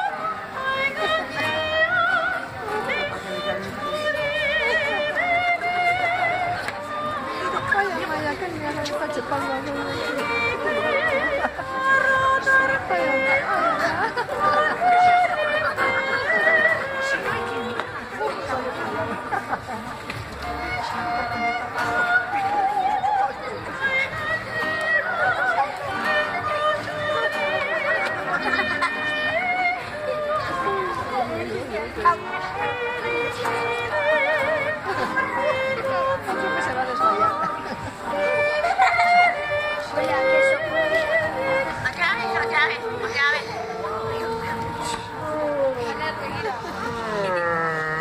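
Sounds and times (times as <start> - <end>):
soprano singing with vibrato: 0.0 - 19.2, 20.3 - 46.4
acoustic guitar: 0.0 - 48.0.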